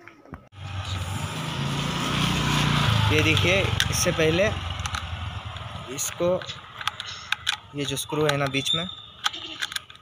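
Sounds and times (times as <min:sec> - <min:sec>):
vehicle engine humming: 0:00.5 - 0:10.0.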